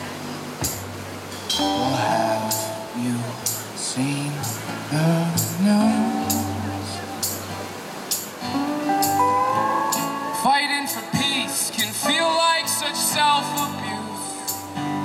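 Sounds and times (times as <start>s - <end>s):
upright bass: 0.0s - 7.8s, 8.4s - 15.0s
strummed acoustic guitars: 0.0s - 15.0s
drum kit steady beat: 0.6s - 1.7s
person singing: 1.6s - 7.4s, 9.1s - 14.8s.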